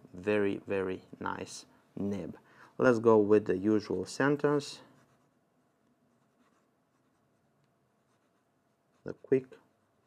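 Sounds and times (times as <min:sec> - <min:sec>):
fountain pen scratching paper: 0:05.0 - 0:05.4, 0:06.2 - 0:07.4, 0:08.0 - 0:09.4.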